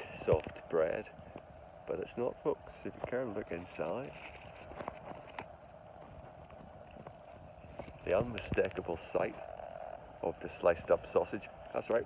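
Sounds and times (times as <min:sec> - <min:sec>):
low background hiss: 0:00.0 - 0:12.0
foil crackling: 0:02.8 - 0:06.6.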